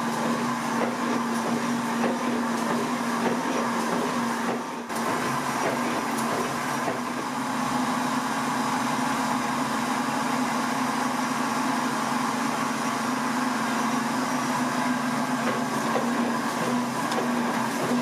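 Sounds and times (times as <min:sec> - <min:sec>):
printing press humming: 0:00.0 - 0:18.0.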